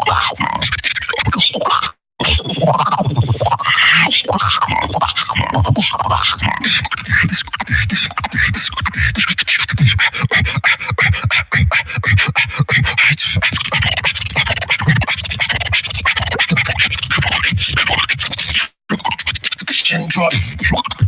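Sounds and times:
person beatboxing: 0.0 - 21.0.

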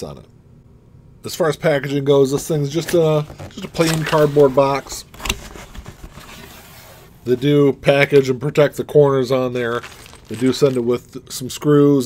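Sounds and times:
cardboard scraping and rubbing: 2.4 - 7.6.

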